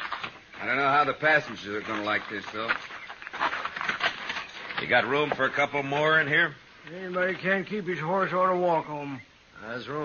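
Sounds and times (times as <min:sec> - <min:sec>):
shuffling and scuffing footsteps: 0:00.0 - 0:06.3.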